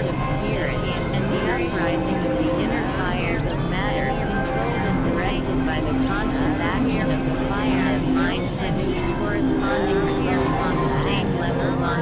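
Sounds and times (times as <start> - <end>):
low synthesizer drone: 0.0 - 12.0.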